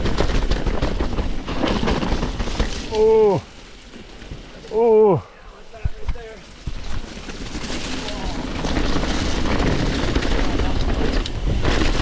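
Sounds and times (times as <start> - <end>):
bike clattering and rattling: 0.0 - 4.7, 5.8 - 12.0
mountain bike rumbling downhill: 0.0 - 12.0.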